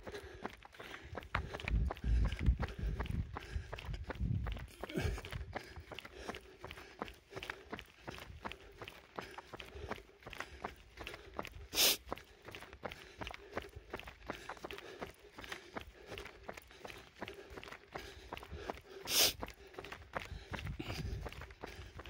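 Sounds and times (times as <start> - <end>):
footsteps on asphalt: 0.0 - 22.0.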